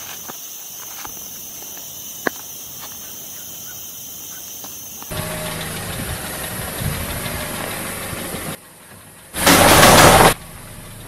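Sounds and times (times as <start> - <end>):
car engine running: 5.1 - 11.0.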